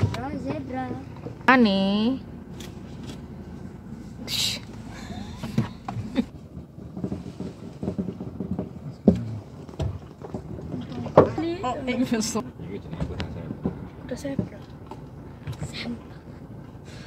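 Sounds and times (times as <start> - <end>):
car cabin hum: 0.0 - 17.0.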